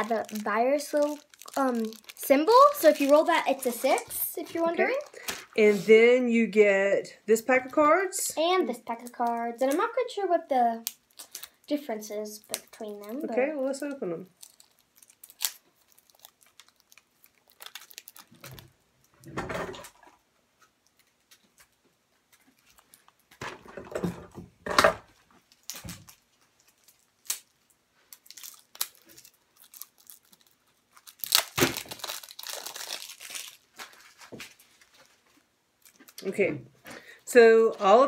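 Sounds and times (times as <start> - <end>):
plastic wrap crinkling and tearing: 0.0 - 5.9, 8.7 - 19.2, 20.8 - 23.4, 25.4 - 36.3.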